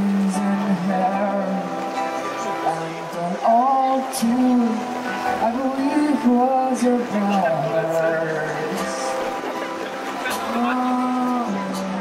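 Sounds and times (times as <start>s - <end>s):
man singing into a microphone: 0.0s - 9.2s, 10.3s - 12.0s
acoustic guitar: 0.0s - 12.0s.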